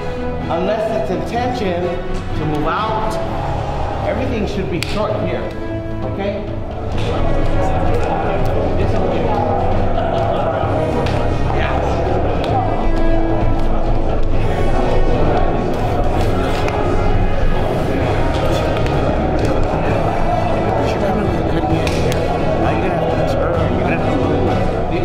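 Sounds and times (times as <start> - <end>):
background music: 0.0 - 25.0
chatter of many people: 0.0 - 25.0.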